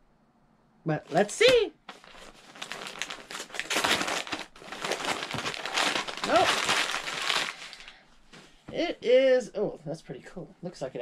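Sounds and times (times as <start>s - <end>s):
wrapping paper crinkling: 1.0s - 8.0s.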